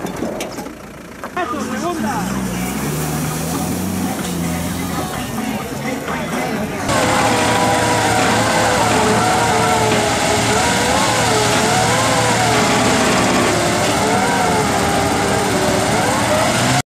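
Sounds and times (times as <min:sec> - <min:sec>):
wheels spinning in loose dirt: 0:00.0 - 0:16.8
off-road engine revving: 0:00.0 - 0:16.9.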